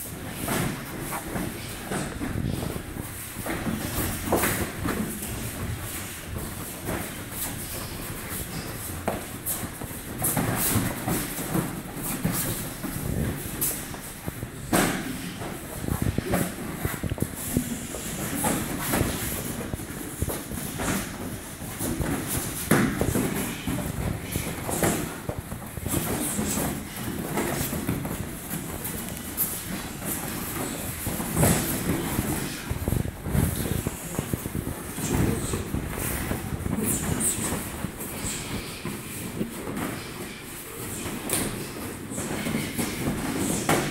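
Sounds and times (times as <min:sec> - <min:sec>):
bare feet on foam mats: 0:00.0 - 0:43.9.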